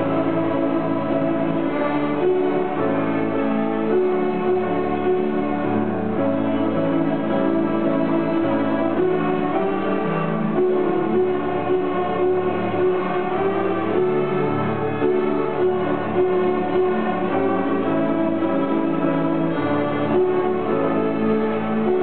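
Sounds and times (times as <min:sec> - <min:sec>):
string orchestra playing: 0:00.0 - 0:22.0.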